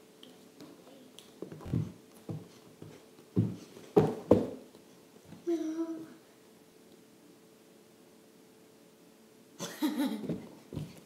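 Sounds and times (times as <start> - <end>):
hands and feet thumping on floor: 1.4 - 4.6.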